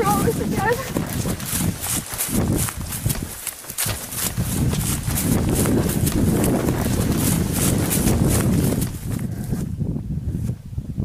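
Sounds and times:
running footsteps through grass: 0.0 - 9.8
camera handling rumble: 1.0 - 9.6.

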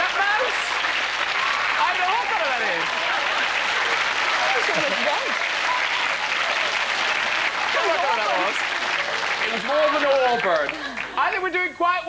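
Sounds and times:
voices rising: 0.0 - 11.6
audience clapping: 0.0 - 11.7
audience laughing: 0.1 - 11.4.

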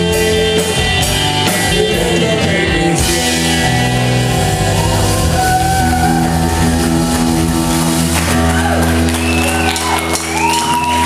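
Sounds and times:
band holding sustained chord: 3.2 - 8.3.

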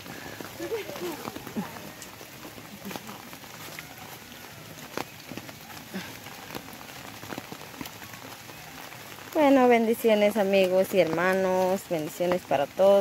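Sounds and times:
rain on leafy vegetation: 0.0 - 13.0
snaps and rustles among plants: 0.0 - 13.0.

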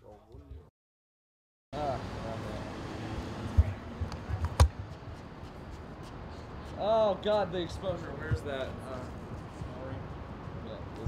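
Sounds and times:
outdoor background noise: 1.8 - 11.0.

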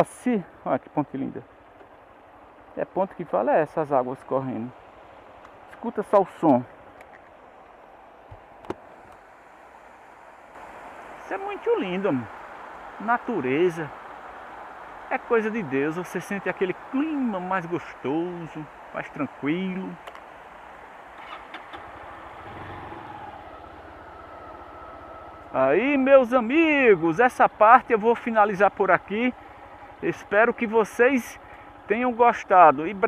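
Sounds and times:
steady hiss: 8.8 - 23.4
stream rushing over rocks: 8.8 - 23.4
motorcycle engine running at low revs: 21.2 - 26.0.

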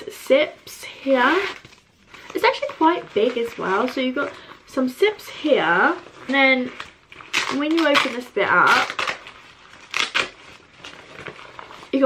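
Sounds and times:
fabric bag rustling and scraping: 1.0 - 12.0.

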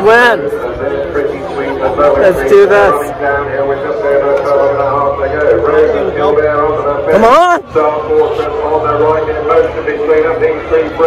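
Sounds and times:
man commentating over loudspeaker: 0.0 - 11.0.

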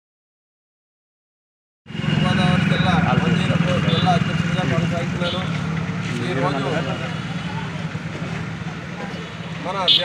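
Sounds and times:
faint voices of a gathering: 2.1 - 10.0
man speaking close up: 2.2 - 7.2, 9.6 - 10.0.

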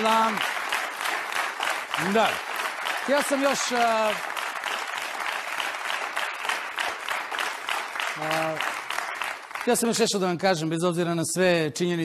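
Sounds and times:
audience applauding: 0.0 - 10.7
man speaking: 2.0 - 2.4, 3.0 - 4.2, 9.7 - 12.0.

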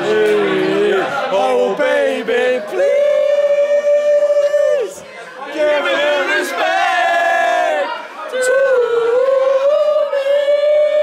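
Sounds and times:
men singing together unaccompanied: 0.0 - 4.7, 5.5 - 11.0.

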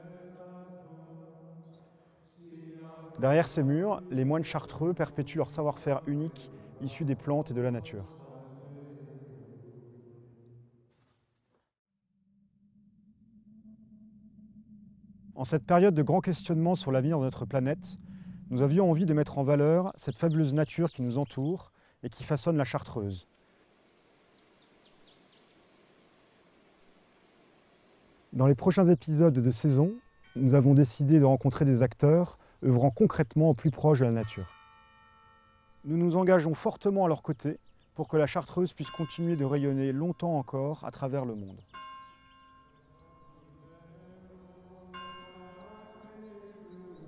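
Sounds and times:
low chanting voice: 0.0 - 10.8, 15.4 - 23.3, 28.3 - 34.6, 35.8 - 41.7, 42.8 - 47.0
small birds chirping: 18.5 - 21.6, 41.1 - 47.0
bell struck and ringing: 34.2 - 36.0, 38.8 - 40.4, 41.7 - 43.8.

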